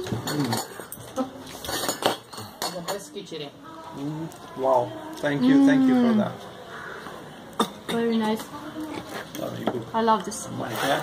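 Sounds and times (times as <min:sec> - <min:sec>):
metal spoons clinking on plates: 0:00.0 - 0:03.2.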